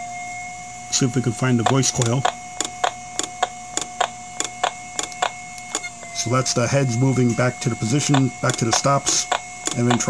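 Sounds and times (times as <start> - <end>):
hard drive clicking: 1.6 - 6.0, 8.0 - 10.0.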